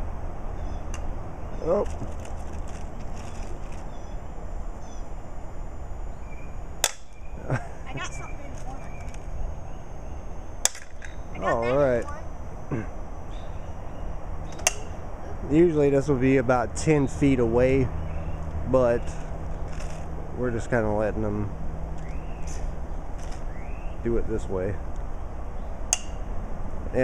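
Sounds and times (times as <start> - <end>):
steady low rumble: 0.0 - 27.0.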